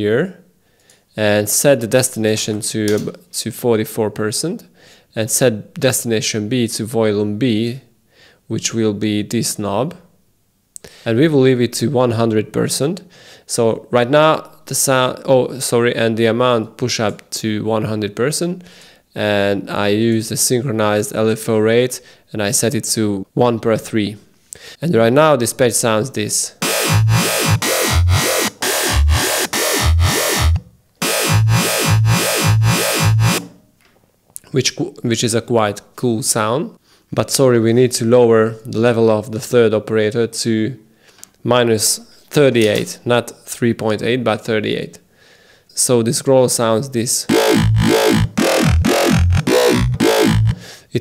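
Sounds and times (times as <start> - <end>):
wobbling synth growl bass: 26.6 - 33.5, 47.3 - 50.6.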